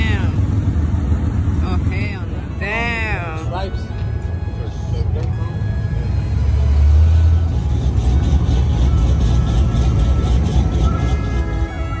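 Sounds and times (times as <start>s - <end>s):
car engine rumbling: 0.0s - 12.0s
background music: 2.1s - 12.0s.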